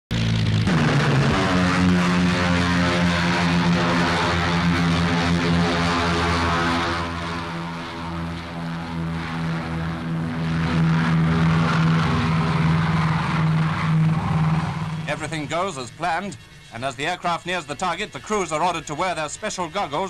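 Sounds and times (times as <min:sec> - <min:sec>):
propeller engines droning: 0:00.1 - 0:20.0.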